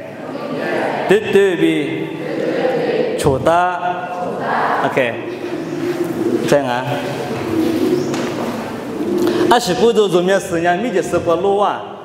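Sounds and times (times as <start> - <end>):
man speaking into a microphone: 1.1 - 2.1, 6.4 - 7.4, 9.3 - 12.0
steady held tone: 4.8 - 10.1.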